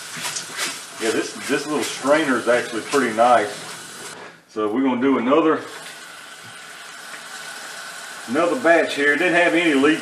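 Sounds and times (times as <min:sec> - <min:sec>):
tap water running into plastic drum: 0:00.0 - 0:04.2, 0:05.7 - 0:10.0.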